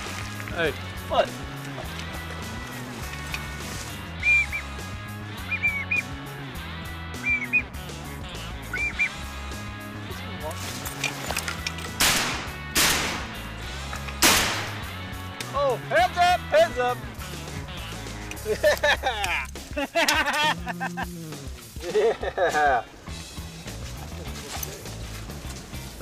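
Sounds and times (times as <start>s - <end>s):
music with steady low beat: 12.0s - 22.5s, 23.1s - 26.0s.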